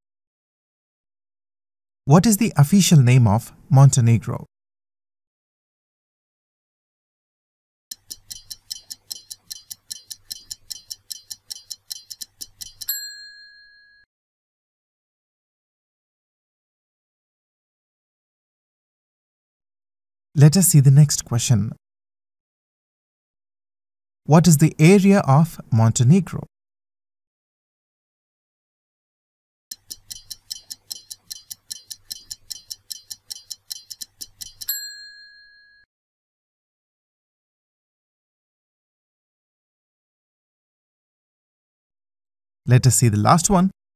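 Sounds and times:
stopwatch ticking: 0:07.9 - 0:13.7, 0:29.7 - 0:34.9
bell ding: 0:12.9 - 0:14.0, 0:34.7 - 0:35.8.

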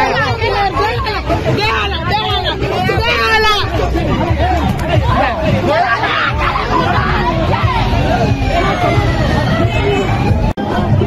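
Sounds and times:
crowd shouting and talking: 0:00.0 - 0:11.0.

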